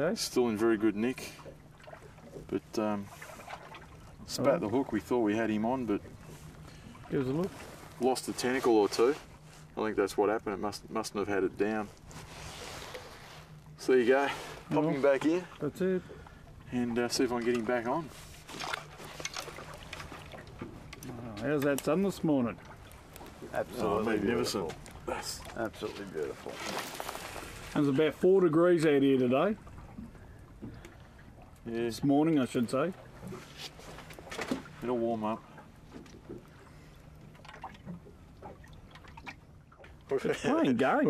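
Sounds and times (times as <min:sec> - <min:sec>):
low steady rumble: 0:00.0 - 0:41.0
waves lapping against boat: 0:00.0 - 0:41.0.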